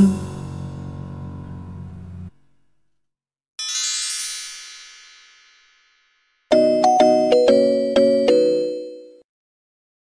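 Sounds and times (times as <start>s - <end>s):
bell-like jingle notes: 3.6s - 9.2s.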